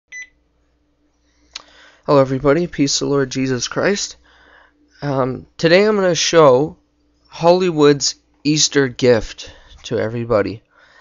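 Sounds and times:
faint hum: 0:00.1 - 0:11.0.

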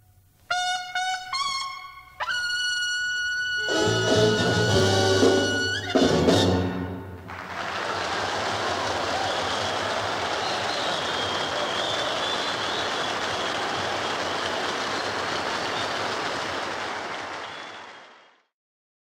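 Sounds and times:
audience applauding: 0:07.2 - 0:18.5.

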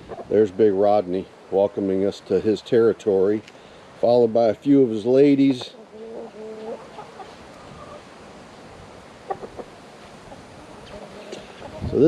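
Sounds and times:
chickens clucking: 0:00.0 - 0:00.8, 0:04.4 - 0:12.0
light steady hiss: 0:00.0 - 0:12.0.

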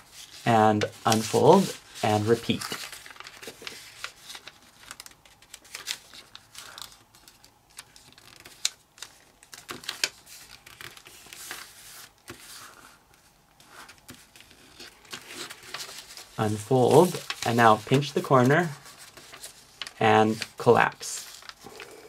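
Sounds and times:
paper crackles: 0:00.0 - 0:22.0
paper rustling and crinkling: 0:00.0 - 0:22.0.

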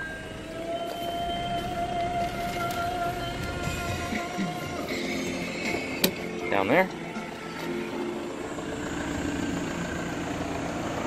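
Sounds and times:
diesel engine idling: 0:00.0 - 0:11.0
sustained tone: 0:00.0 - 0:11.0.

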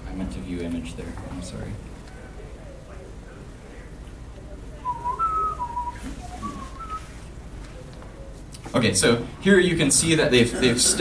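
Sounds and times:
person whistling: 0:04.8 - 0:07.2.

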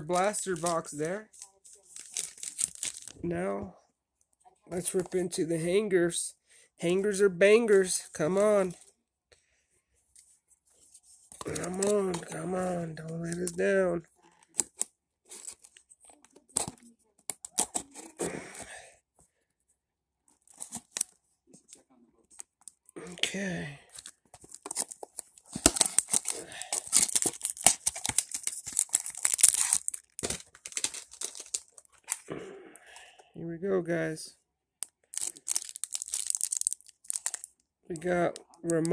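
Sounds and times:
plastic wrapper crinkling and tearing: 0:00.0 - 0:03.2, 0:11.3 - 0:18.2, 0:20.3 - 0:21.2, 0:23.9 - 0:32.3, 0:34.8 - 0:38.9
plastic wrapping clicks and rustles: 0:00.0 - 0:03.2, 0:23.9 - 0:32.3, 0:34.8 - 0:38.9.

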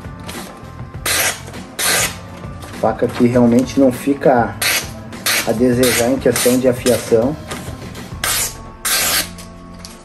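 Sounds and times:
background music: 0:00.0 - 0:10.0
knife slicing paper: 0:01.1 - 0:02.2, 0:04.6 - 0:06.6, 0:08.3 - 0:09.4.

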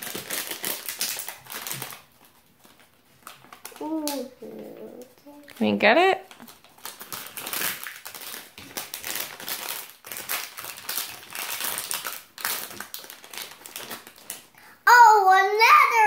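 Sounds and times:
plastic pouch crinkling: 0:00.0 - 0:04.6, 0:05.5 - 0:14.5.

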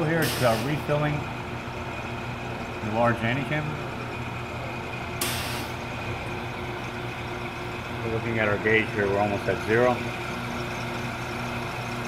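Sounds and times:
machinery hum: 0:00.0 - 0:12.0
gas hissing: 0:00.1 - 0:01.2, 0:05.2 - 0:08.8.

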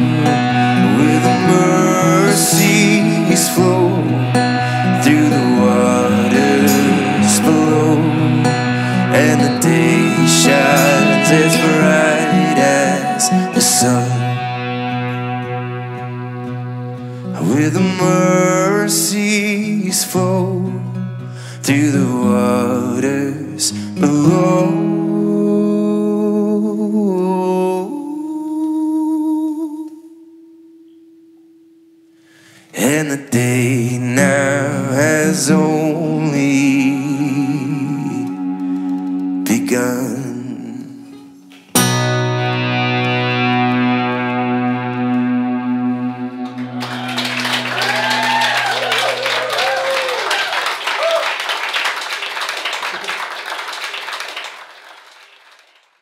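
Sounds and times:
guitar chord ringing: 0:00.0 - 0:25.5, 0:33.8 - 0:48.8
audience applause: 0:46.4 - 0:56.0
cheers and whoops: 0:46.6 - 0:53.4.

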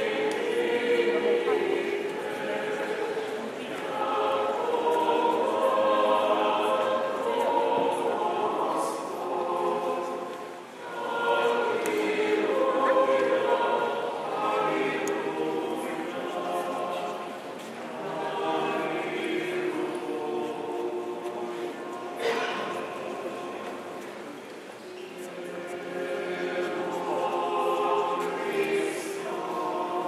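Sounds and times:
choir chanting: 0:00.0 - 0:24.4, 0:25.1 - 0:30.0.

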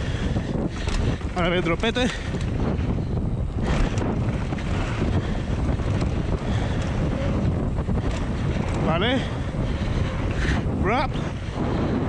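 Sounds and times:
bike rattle: 0:00.0 - 0:12.0
bike tyre noise: 0:00.0 - 0:12.0
wind buffeting microphone: 0:00.0 - 0:12.0.

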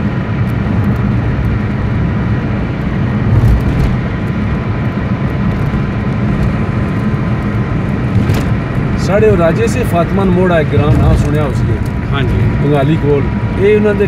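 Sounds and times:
vehicle engine and road rumble: 0:00.0 - 0:14.0.

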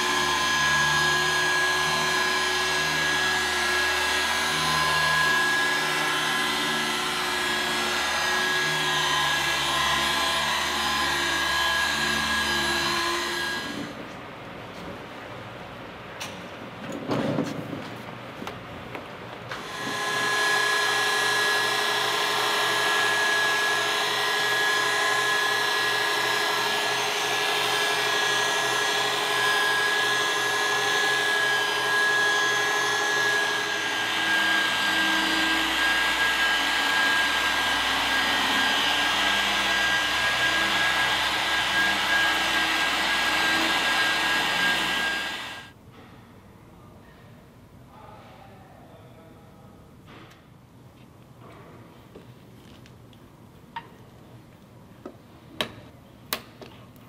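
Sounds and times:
electric polisher whine: 0:00.0 - 0:14.0, 0:19.5 - 0:45.8
second polisher running: 0:00.0 - 0:14.0, 0:19.5 - 0:45.8.

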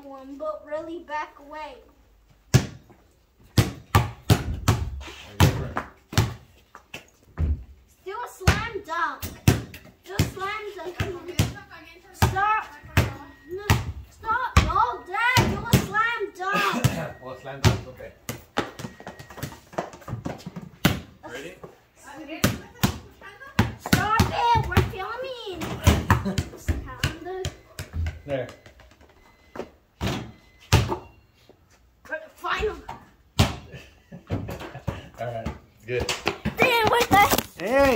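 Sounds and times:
basketball bouncing on concrete: 0:02.5 - 0:06.6, 0:08.4 - 0:16.0, 0:16.8 - 0:28.8, 0:29.5 - 0:31.1, 0:34.3 - 0:37.9.

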